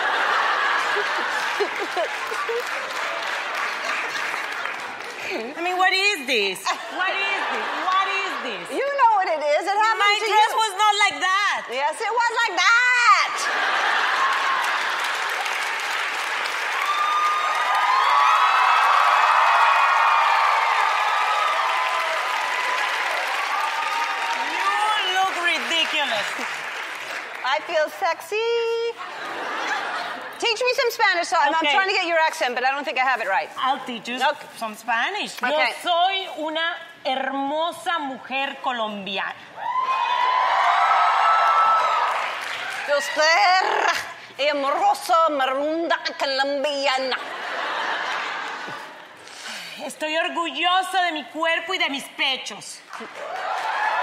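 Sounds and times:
audience applauding: 0.0 - 5.7, 13.5 - 27.8, 39.7 - 43.4, 52.9 - 54.0.

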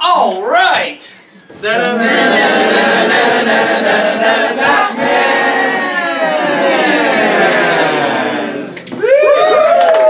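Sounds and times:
group singing long note: 1.7 - 8.8.

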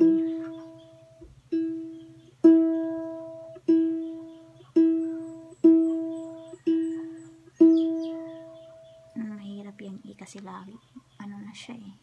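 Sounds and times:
ukulele string plucked: 0.0 - 9.1.

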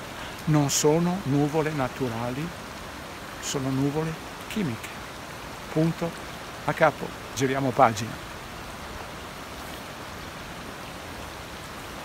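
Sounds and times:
stream running over stones: 0.0 - 12.0.

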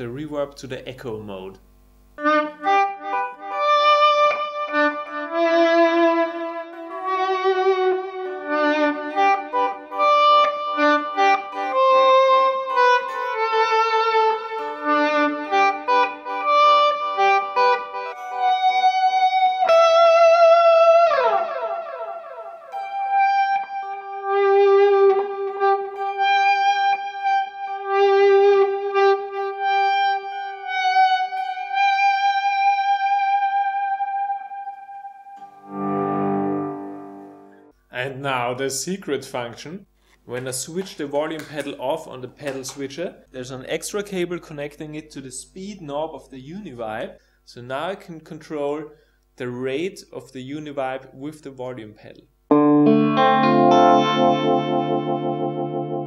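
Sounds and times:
electric guitar volume swells: 2.2 - 37.7, 52.5 - 56.0.

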